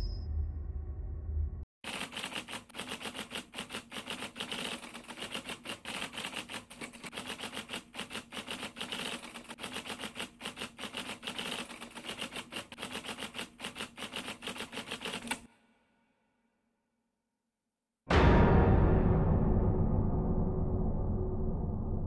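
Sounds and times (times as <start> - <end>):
typewriter keystrokes clacking: 1.9 - 15.4.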